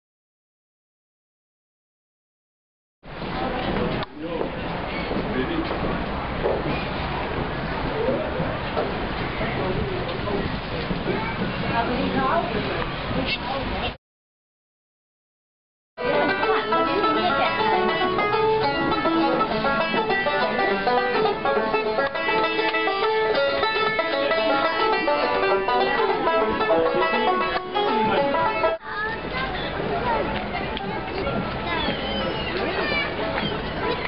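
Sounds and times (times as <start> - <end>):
outdoor voices: 3.1 - 14.0, 16.0 - 34.0
plucked string instrument: 16.0 - 31.7.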